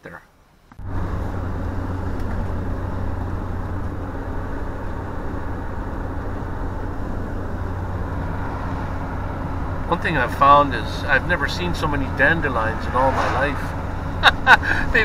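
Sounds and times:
engine and road drone: 0.6 - 15.0.

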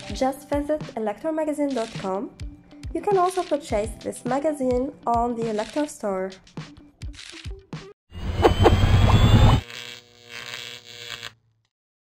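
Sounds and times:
loud buzzy low sound: 8.2 - 9.6
steady electronic tone: 8.2 - 9.6.

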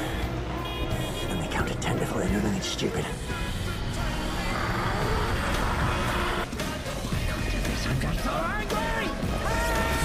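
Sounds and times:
rumbling vehicle-like noise: 0.0 - 7.6
music: 0.0 - 10.0.

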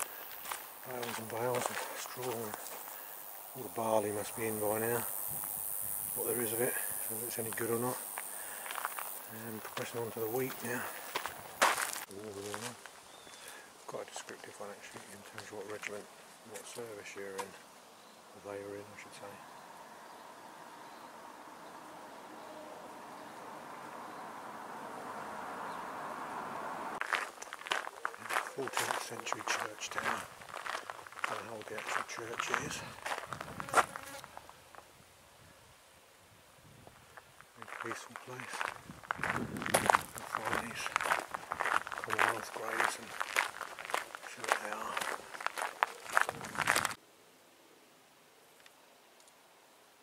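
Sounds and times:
footsteps: 0.0 - 3.2, 6.3 - 13.6, 27.0 - 34.9, 37.2 - 47.0
fly buzzing past: 4.4 - 9.3, 32.6 - 34.7.

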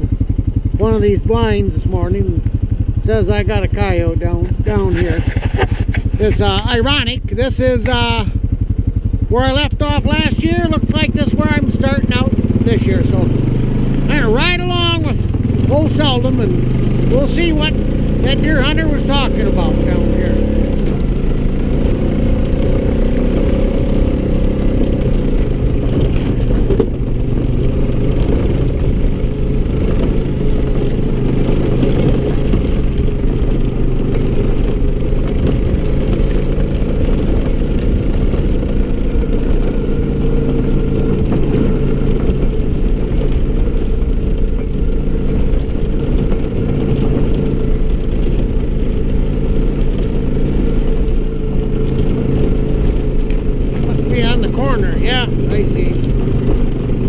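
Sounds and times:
quad bike engine droning: 0.0 - 57.0.

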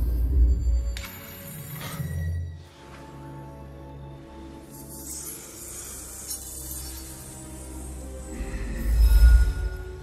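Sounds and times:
film score with low notes: 0.0 - 10.0.

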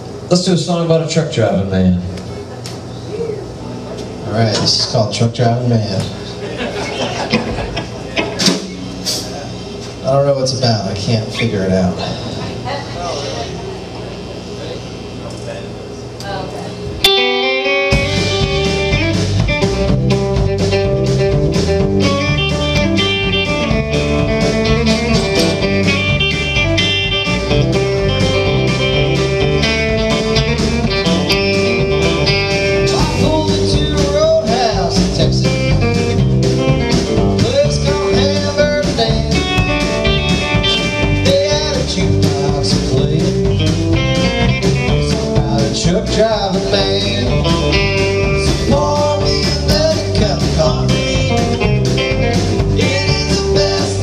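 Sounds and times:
bass: 0.0 - 54.0
electric guitar lines: 0.0 - 54.0
steady drum beat: 6.7 - 10.7, 17.0 - 54.0
acoustic rhythm guitar: 17.0 - 54.0.

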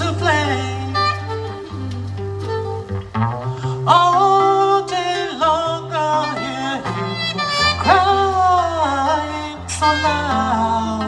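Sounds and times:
person singing wordless vocal: 0.0 - 2.2, 3.5 - 11.0
acoustic guitar low notes: 0.0 - 11.0.

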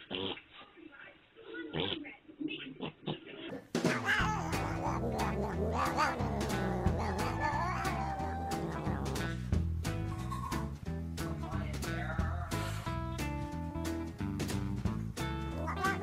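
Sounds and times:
cat meowing: 4.0 - 9.2
music with steady beat: 7.1 - 15.6.

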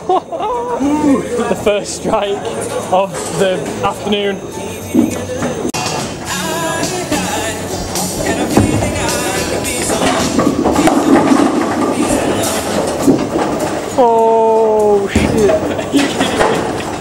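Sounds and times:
background music: 0.1 - 17.0
bowling ball rolling on wooden lane: 7.0 - 14.3, 15.1 - 17.0.

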